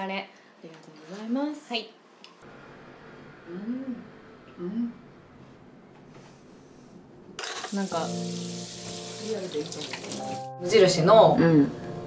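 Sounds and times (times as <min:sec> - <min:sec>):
water running from tap: 0:07.6 - 0:10.8
background music: 0:07.9 - 0:12.0.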